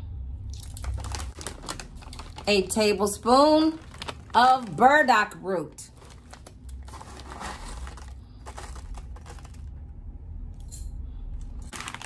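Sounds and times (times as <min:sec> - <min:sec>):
foil pouch crinkles: 0:00.6 - 0:09.8, 0:11.7 - 0:12.0.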